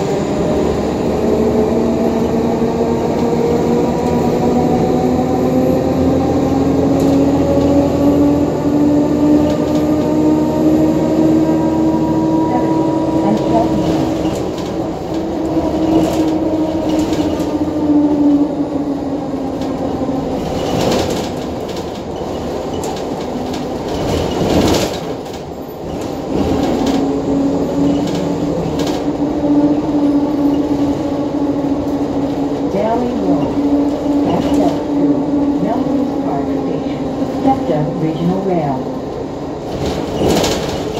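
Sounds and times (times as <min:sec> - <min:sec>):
bus drivetrain tone: 0:00.0 - 0:40.9
road noise: 0:00.0 - 0:40.9
bus body knocks and rattles: 0:20.5 - 0:27.1, 0:39.6 - 0:40.9.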